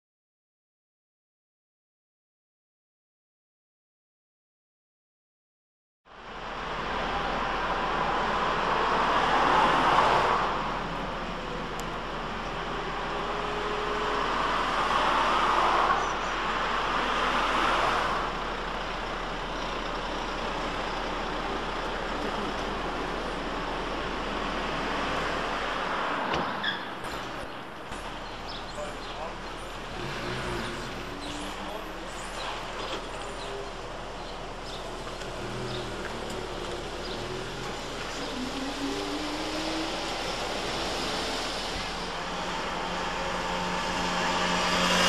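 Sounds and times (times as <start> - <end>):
passing road traffic: 6.1 - 45.0.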